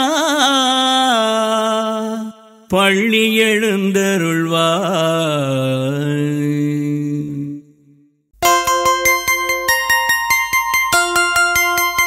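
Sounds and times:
man singing devotional chant: 0.0 - 7.9.

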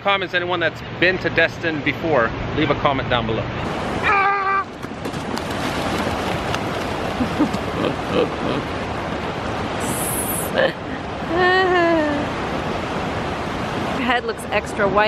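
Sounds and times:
surf breaking on shore: 3.6 - 11.4
person shouting: 4.0 - 4.7.

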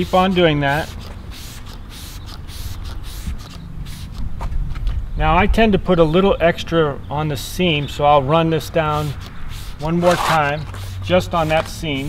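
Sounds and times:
spray bottle hissing: 0.0 - 4.3, 8.8 - 12.0.

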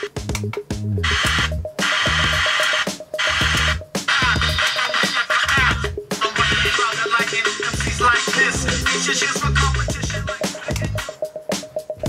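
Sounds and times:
music on radio loudspeaker: 0.0 - 12.0.

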